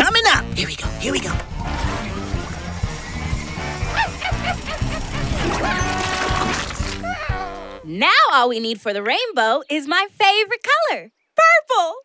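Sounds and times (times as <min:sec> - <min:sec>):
cartoon background music: 0:00.0 - 0:09.7
cartoon creature yipping: 0:03.8 - 0:07.8.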